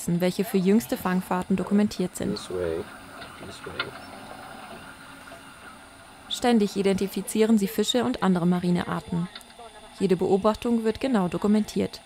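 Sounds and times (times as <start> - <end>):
machinery hum and hiss: 0.0 - 12.0.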